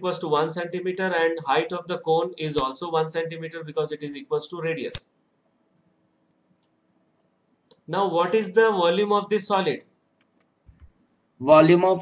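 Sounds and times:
man speaking: 0.0 - 5.0, 7.9 - 9.9, 11.4 - 12.0.

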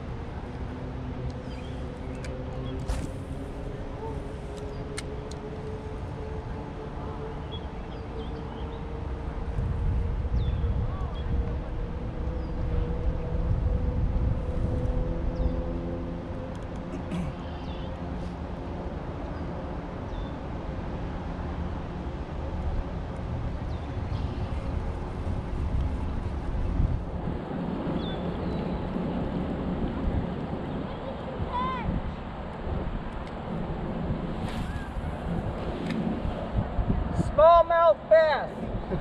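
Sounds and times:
wind buffeting microphone: 0.0 - 16.5, 18.9 - 39.0
faint engine hum: 0.0 - 37.4.

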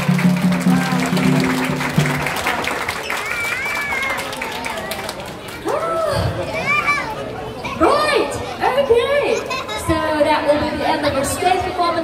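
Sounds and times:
clapping and applause: 0.0 - 6.0.

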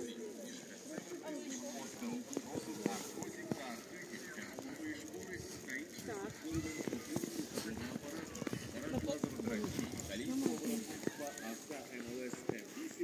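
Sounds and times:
footsteps in snow: 0.0 - 13.0
people talking indistinctly: 0.0 - 13.0.

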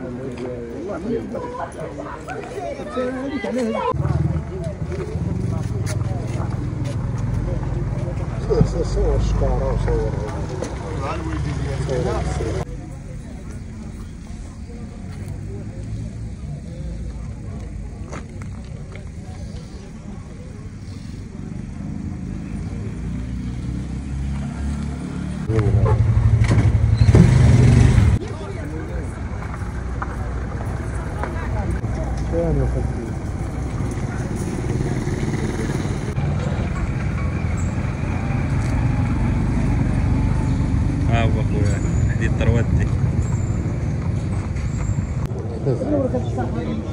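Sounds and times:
people chattering: 0.0 - 46.9.

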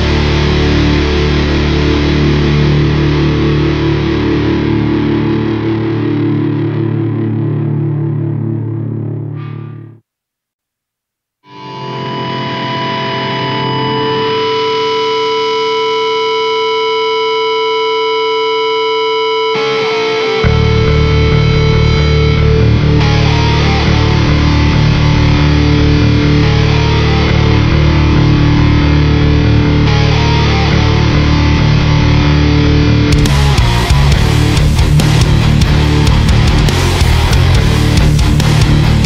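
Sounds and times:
distorted electric guitar: 0.0 - 10.1, 11.4 - 39.0
punk band playing: 22.6 - 39.0.

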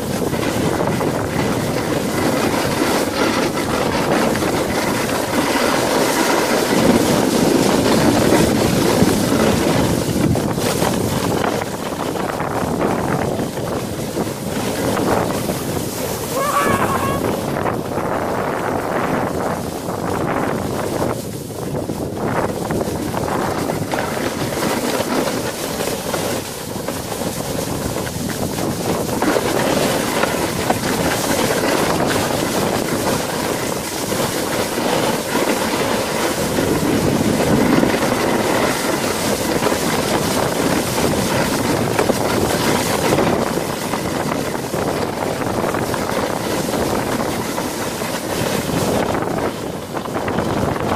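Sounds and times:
sled rushing over snow: 0.0 - 50.9
wind buffeting microphone: 0.0 - 50.9.

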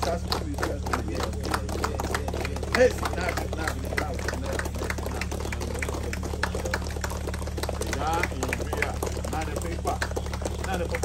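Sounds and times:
faint voices: 0.0 - 11.0
low electrical hum: 0.0 - 11.0.

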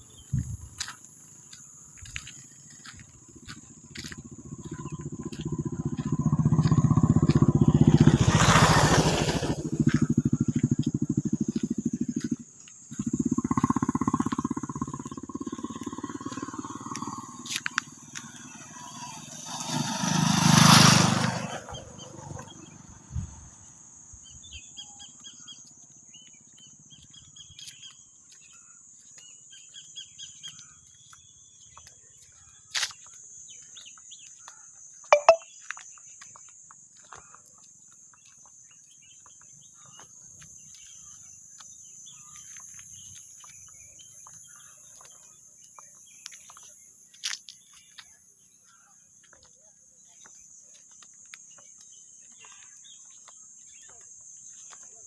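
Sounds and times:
high insect whine: 0.0 - 24.4
motorcycles passing: 2.9 - 23.2
engine drone: 3.4 - 22.8
faint chirps: 24.3 - 36.4.

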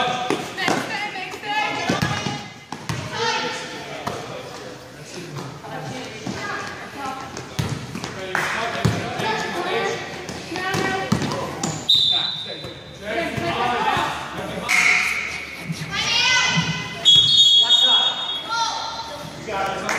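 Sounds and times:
basketball bouncing on court: 1.9 - 3.1, 7.3 - 8.1, 10.3 - 11.8.

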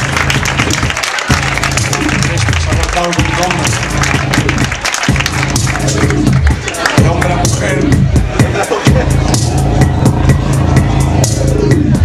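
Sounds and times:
drums beating: 0.0 - 12.0
low bass line: 0.0 - 12.0.

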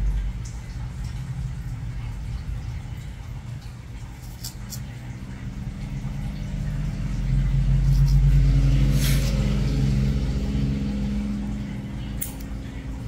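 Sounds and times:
low engine-like rumble: 0.0 - 13.0.

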